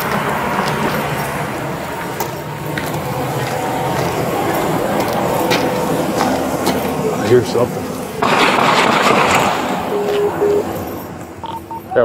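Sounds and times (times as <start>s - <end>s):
higher electronic beeps: 8.9s - 12.0s
low electronic beeps: 9.0s - 12.0s.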